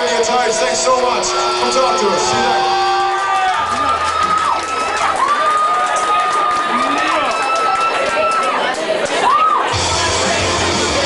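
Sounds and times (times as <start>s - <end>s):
audience cheering and clapping: 0.1s - 11.0s
high whistle: 0.4s - 5.0s.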